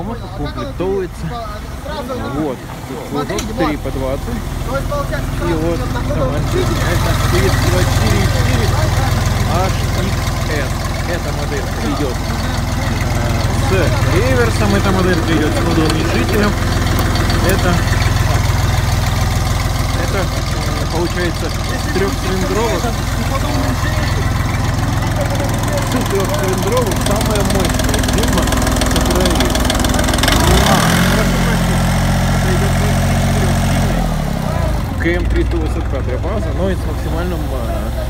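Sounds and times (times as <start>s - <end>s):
diesel tractor engine idling: 0.0s - 38.0s.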